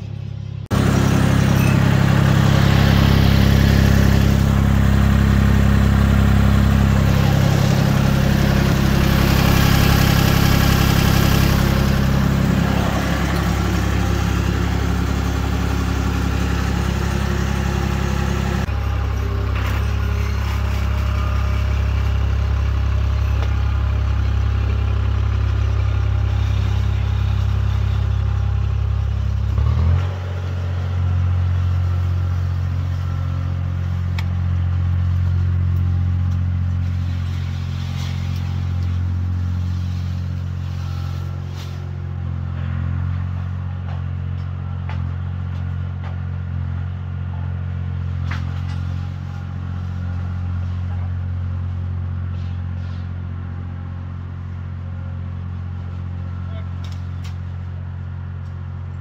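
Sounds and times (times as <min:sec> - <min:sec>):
skid steer engine running: 0:00.0 - 0:59.0.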